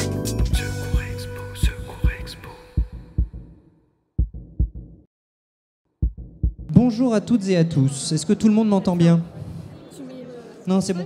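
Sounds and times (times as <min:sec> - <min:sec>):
intro music: 0:00.0 - 0:02.5
heartbeat thumps: 0:00.9 - 0:03.6, 0:04.2 - 0:05.0, 0:06.0 - 0:06.7.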